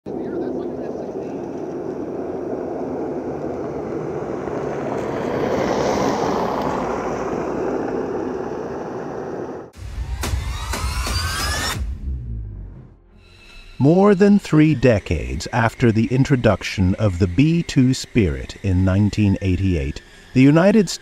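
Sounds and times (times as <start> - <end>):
jet bomber flying past: 0.1 - 9.8.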